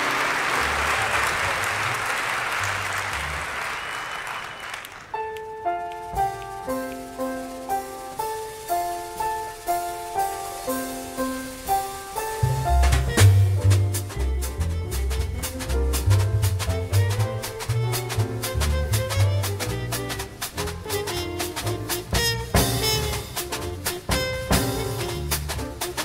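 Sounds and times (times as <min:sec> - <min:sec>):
jazz piano: 0:05.1 - 0:26.0
drum kit with cymbals: 0:05.9 - 0:26.0
walking double bass: 0:05.9 - 0:26.0.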